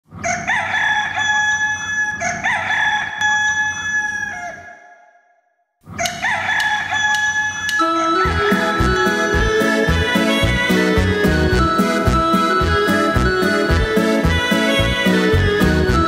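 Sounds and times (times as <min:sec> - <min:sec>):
rooster crowing: 0:00.1 - 0:05.1, 0:06.0 - 0:10.6
music: 0:07.8 - 0:16.0.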